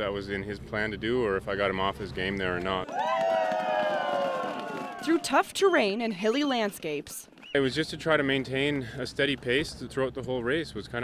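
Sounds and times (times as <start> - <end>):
sled dogs howling: 2.9 - 5.3.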